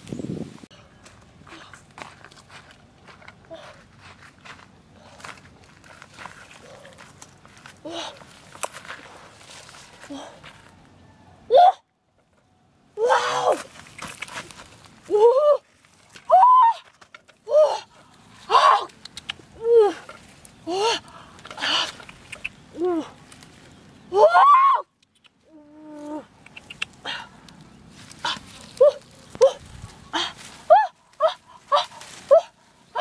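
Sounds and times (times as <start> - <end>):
leaves and twigs rustling: 0.0 - 11.2, 13.0 - 33.0.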